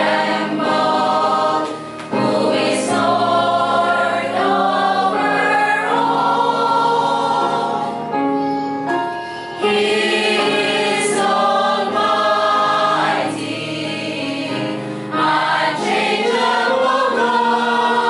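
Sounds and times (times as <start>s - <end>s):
choir singing a hymn: 0.0s - 8.4s, 9.6s - 18.0s.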